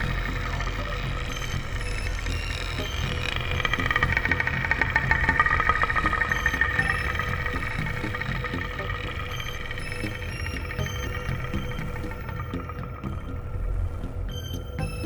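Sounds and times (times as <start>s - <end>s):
high fluttering whirr: 0.0s - 15.0s
low rumbling drone: 0.0s - 15.0s.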